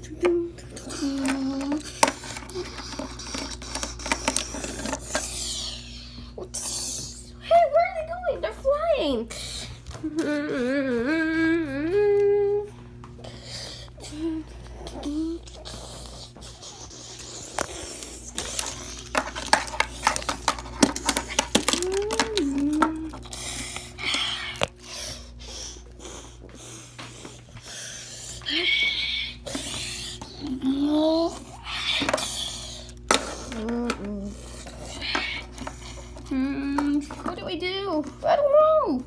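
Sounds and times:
child humming: 0.0s - 1.9s, 10.0s - 12.8s, 13.9s - 15.8s, 21.7s - 23.3s, 28.4s - 32.2s, 33.3s - 34.4s.

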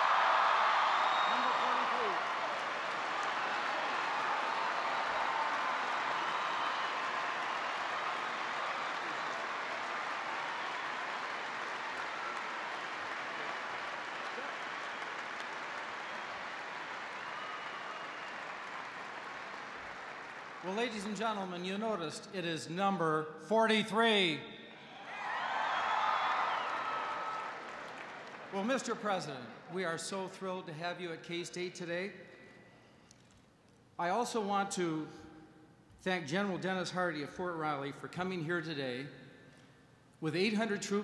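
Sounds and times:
large audience applauding: 0.0s - 21.3s, 25.0s - 29.6s.

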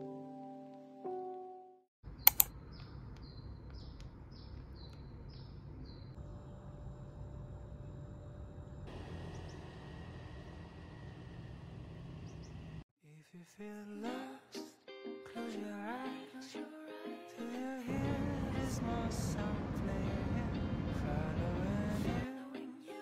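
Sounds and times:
bird chirping: 2.2s - 6.2s, 12.2s - 12.7s
sharp clicks: 2.3s - 5.0s
music with singing: 13.7s - 23.0s
low hum: 17.9s - 22.2s.

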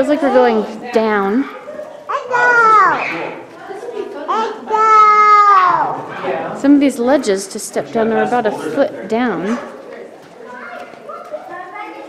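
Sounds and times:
children talking faintly: 0.0s - 6.6s, 9.4s - 12.0s.

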